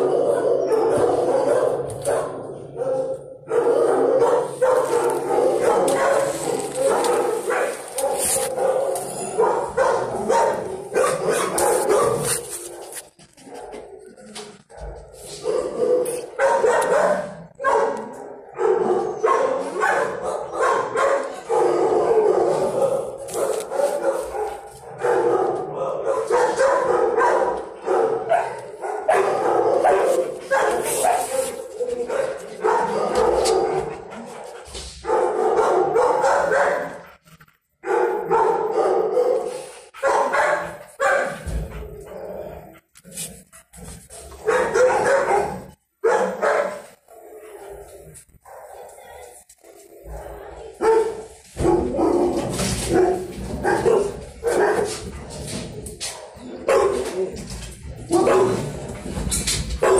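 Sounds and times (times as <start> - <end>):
dogs barking: 0.0 - 59.9.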